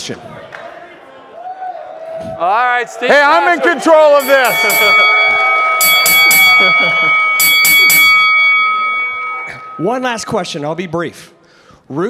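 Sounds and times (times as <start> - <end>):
microphone feedback ringing: 4.2 - 10.6.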